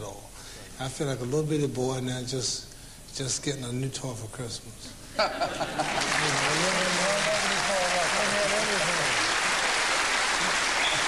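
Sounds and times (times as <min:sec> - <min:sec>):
studio audience applauding: 0:05.7 - 0:11.0.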